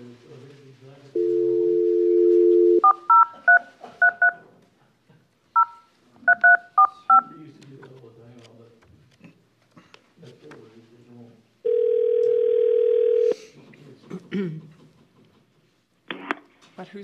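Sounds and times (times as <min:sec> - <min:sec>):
telephone dial tone: 0:01.2 - 0:04.3, 0:11.7 - 0:13.4
touch-tone keypress beeps: 0:02.8 - 0:04.4, 0:05.6 - 0:07.3.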